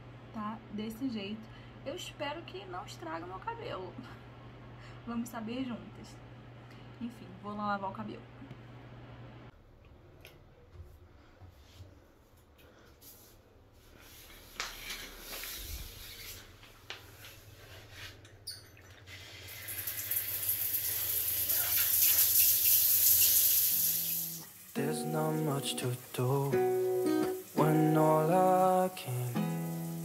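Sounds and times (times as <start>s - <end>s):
shower water running: 18.7s - 30.0s
music: 24.7s - 30.0s.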